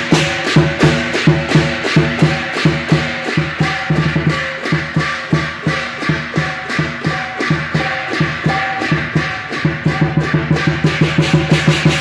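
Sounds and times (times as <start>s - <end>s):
drum beaten with sticks: 0.0s - 12.0s
hand cymbals clashing: 0.0s - 12.0s.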